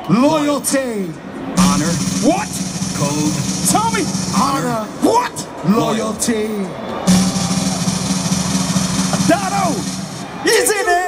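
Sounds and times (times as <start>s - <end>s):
hardcore dance music: 1.6s - 5.0s, 7.1s - 10.3s.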